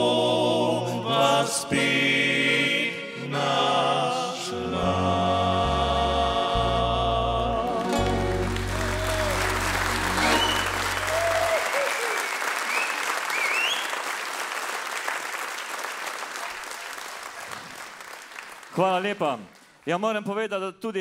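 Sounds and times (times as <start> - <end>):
band holding low note: 6.5 - 11.6
audience applauding: 7.8 - 19.8.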